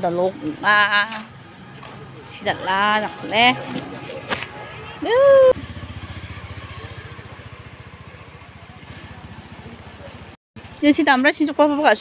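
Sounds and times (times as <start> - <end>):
small engine running: 2.6 - 10.8.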